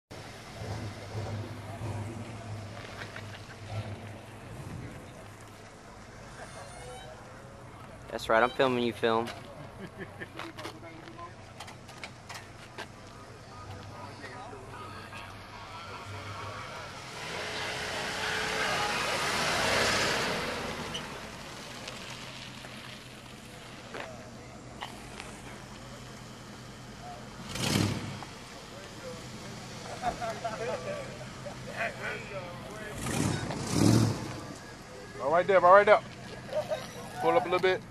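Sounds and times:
car rolling by rumbling: 0.1s - 37.9s
faint voices: 0.2s - 27.5s, 28.1s - 37.9s.

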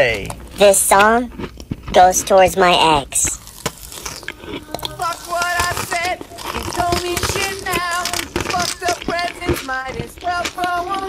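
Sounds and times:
crisp clicks and crunches: 3.3s - 11.0s
high voice singing with vibrato: 4.2s - 11.0s.

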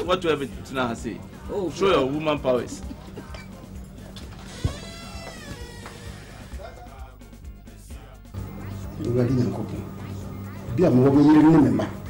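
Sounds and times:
soft background music: 0.0s - 12.0s
wooden door creaking: 4.3s - 6.6s.

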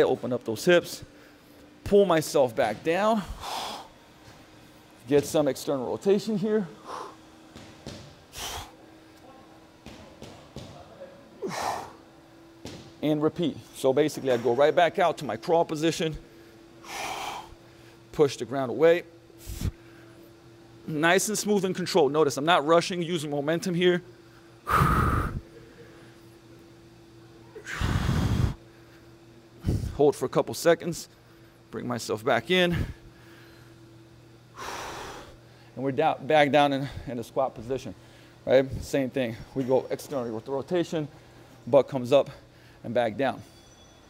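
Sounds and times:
faint steady hum: 0.0s - 44.0s
man breathing hard: 3.1s - 4.4s, 6.8s - 7.4s, 8.3s - 8.9s, 11.4s - 12.1s, 16.3s - 18.1s, 19.4s - 20.2s, 24.3s - 26.2s, 27.6s - 30.0s, 32.7s - 33.8s, 34.5s - 35.8s
man breathing out hard: 8.3s - 8.8s, 11.4s - 12.0s, 24.6s - 26.0s, 27.6s - 28.6s.

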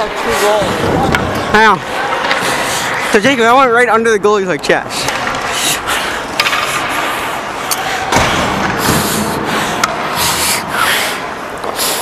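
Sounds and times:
ice skate blades scraping: 4.9s - 12.0s.

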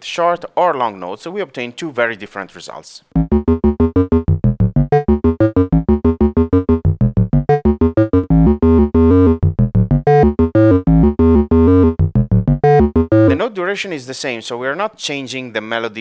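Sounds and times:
synthesizer playing quick melody: 3.2s - 13.4s.

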